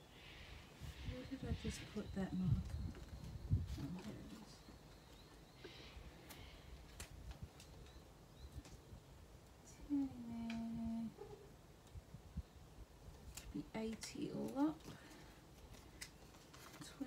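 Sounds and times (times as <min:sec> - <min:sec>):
soft clicks and paper rustles: 0:02.5 - 0:08.9, 0:13.2 - 0:17.0.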